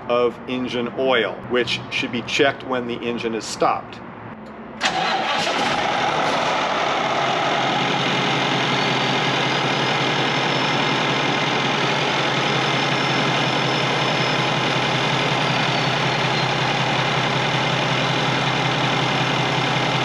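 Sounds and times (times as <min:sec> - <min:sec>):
diesel engine idling: 0:04.8 - 0:20.0.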